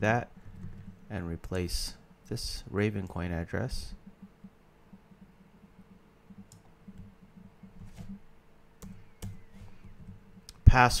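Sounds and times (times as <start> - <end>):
faint low hum: 0.0 - 11.0
computer mouse clicking: 3.9 - 8.2, 8.8 - 10.6.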